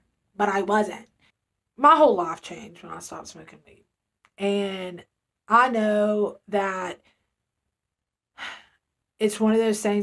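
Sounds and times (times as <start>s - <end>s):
woman speaking: 0.4s - 1.1s, 1.8s - 7.0s, 9.2s - 10.0s
woman breathing: 8.4s - 8.9s.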